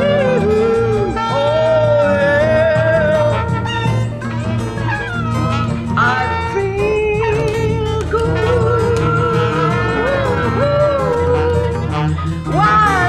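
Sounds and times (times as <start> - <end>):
bass line: 0.0 - 13.0
saxophone melody: 0.0 - 13.0.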